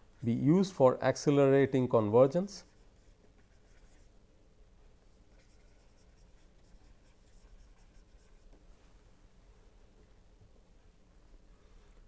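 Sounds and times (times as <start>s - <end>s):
low room hum: 0.0s - 12.0s
stylus scratching on pen tablet: 2.6s - 4.1s, 5.0s - 8.6s.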